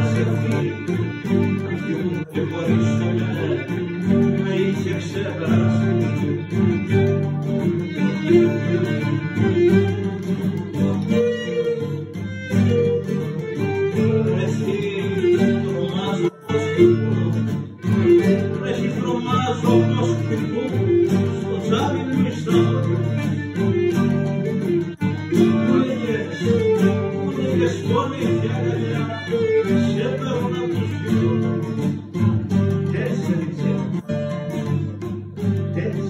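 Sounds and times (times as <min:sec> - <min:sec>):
bowed lyra: 0:00.0 - 0:31.8
plucked lutes and guitar strumming: 0:00.0 - 0:36.0.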